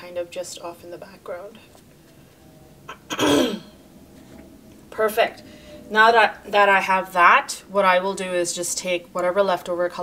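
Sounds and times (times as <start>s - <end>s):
woman clearing throat: 2.9s - 3.8s.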